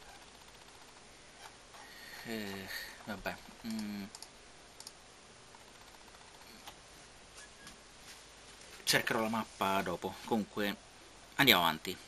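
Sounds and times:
faint computer clicks: 3.6s - 6.8s.

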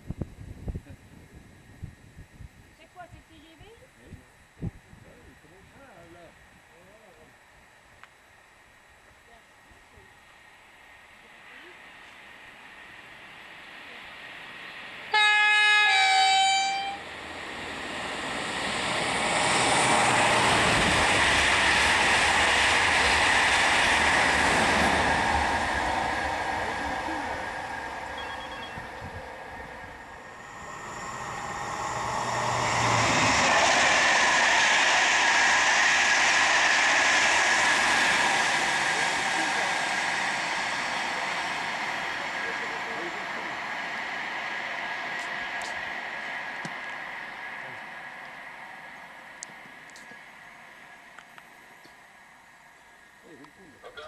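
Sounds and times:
train rushing past: 10.4s - 53.8s
train horn blast: 15.1s - 17.0s.

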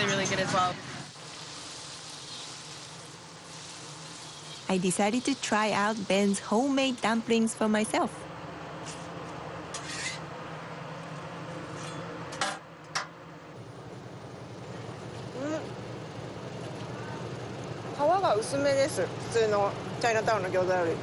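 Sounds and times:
kitchen and street hum: 0.0s - 21.0s.

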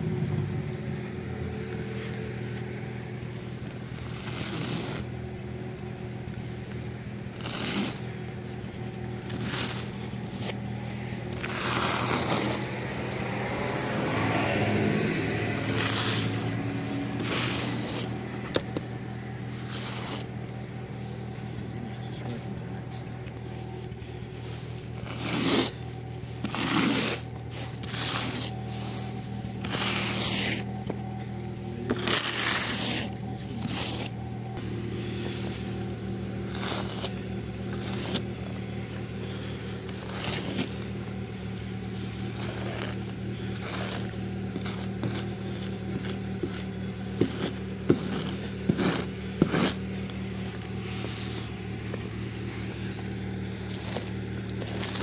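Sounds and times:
snow brush scraping car: 0.0s - 55.0s
steady low hum: 0.0s - 55.0s.

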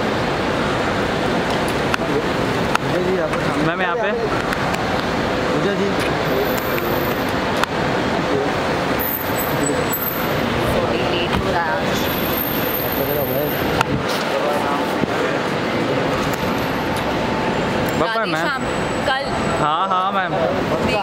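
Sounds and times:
traffic noise: 0.0s - 21.0s.

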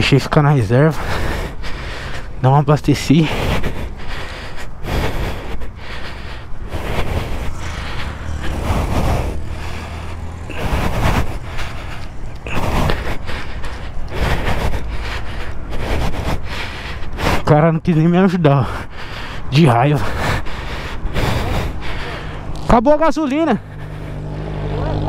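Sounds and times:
motorcycle tyre noise on road: 0.0s - 25.0s
wind buffeting microphone: 4.7s - 17.4s.

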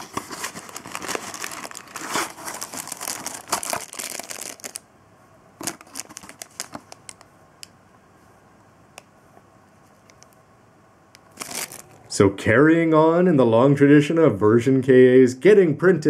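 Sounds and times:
cardboard and plastic rustling: 0.0s - 4.8s, 5.6s - 7.2s, 11.3s - 12.0s.

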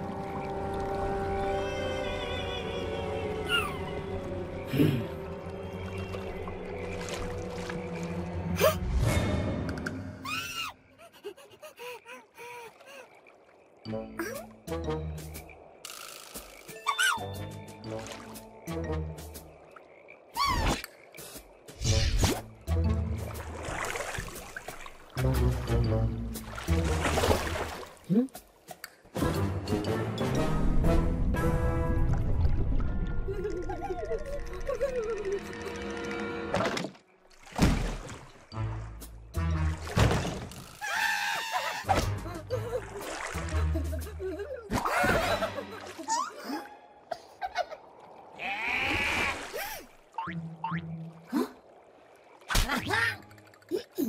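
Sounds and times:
background music: 0.0s - 10.7s, 13.8s - 15.8s, 16.6s - 19.7s, 21.8s - 36.9s, 38.4s - 40.7s, 41.7s - 46.7s.

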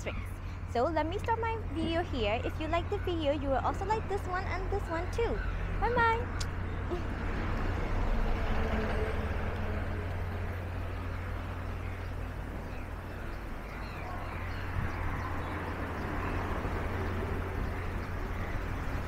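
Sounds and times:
road traffic passing: 0.0s - 19.0s.

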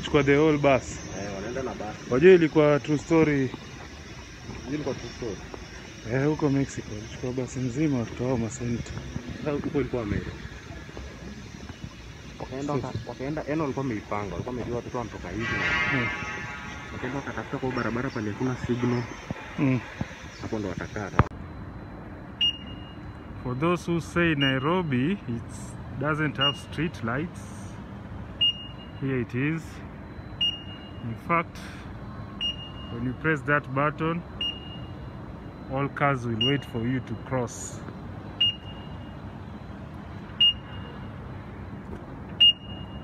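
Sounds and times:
crossing signal beep tone: 0.0s - 43.0s
low street hum: 0.0s - 43.0s
crossing button short high beep: 36.3s - 37.3s.

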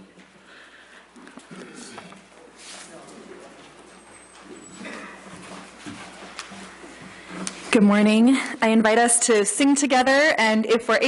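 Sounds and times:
footsteps: 1.1s - 8.7s.

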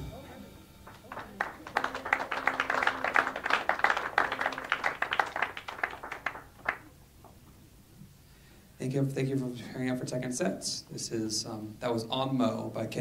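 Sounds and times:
audience applauding: 0.9s - 7.0s.

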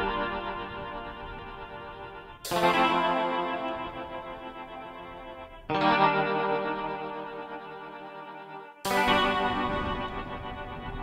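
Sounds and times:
guitar chords in lo-fi beat: 0.0s - 11.0s.

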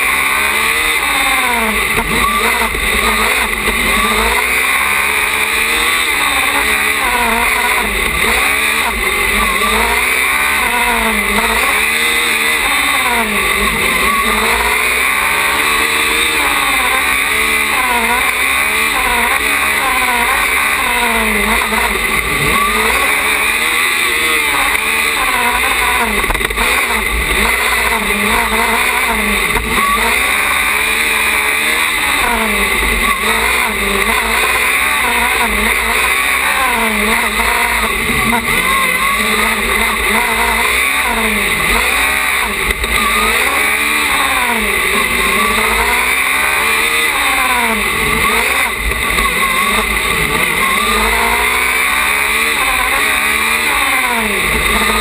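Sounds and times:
race car engine revving: 0.0s - 55.0s.

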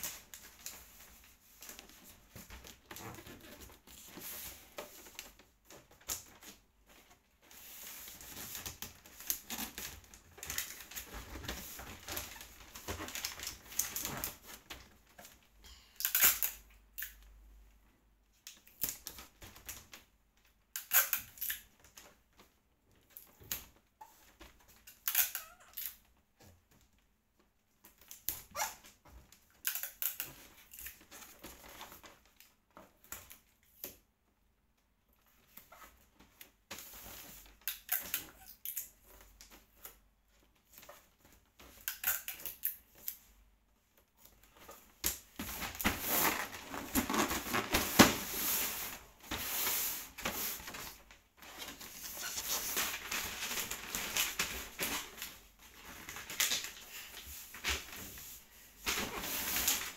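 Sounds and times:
wrapping paper crinkling: 45.5s - 59.9s.

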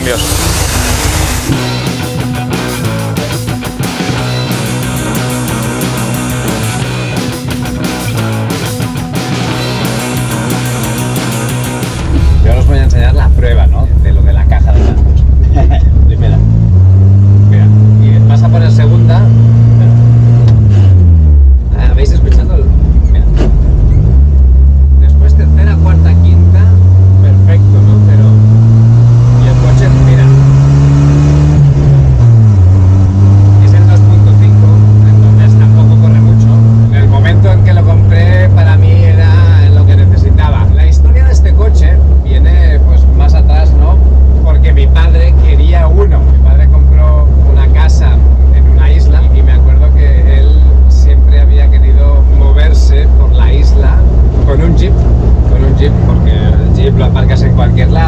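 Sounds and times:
car engine revving through gears: 0.0s - 58.0s.

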